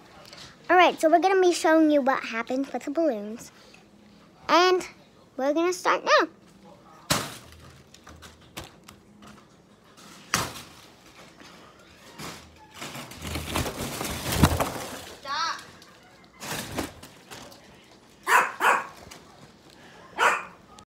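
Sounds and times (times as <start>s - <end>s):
foil balloons crinkling: 10.0s - 18.2s
dog barking: 18.2s - 19.0s, 20.2s - 20.6s.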